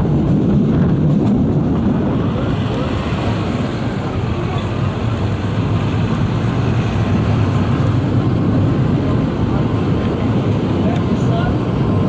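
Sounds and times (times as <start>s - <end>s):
train coach rumbling: 0.0s - 12.0s.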